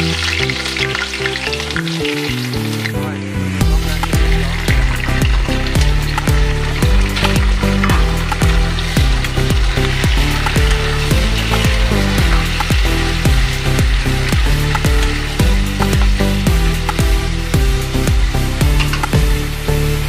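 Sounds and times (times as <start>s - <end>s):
background music with steady beat: 0.0s - 20.0s
food sizzling in hot oil: 0.0s - 20.0s.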